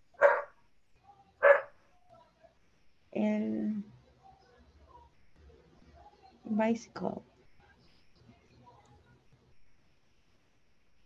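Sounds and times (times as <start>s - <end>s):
dog barking: 0.1s - 0.6s, 1.4s - 1.8s.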